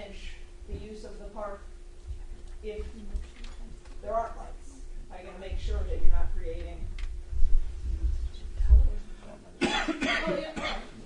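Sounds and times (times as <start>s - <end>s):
low rumbling bump: 5.4s - 9.0s
person coughing: 9.6s - 10.9s.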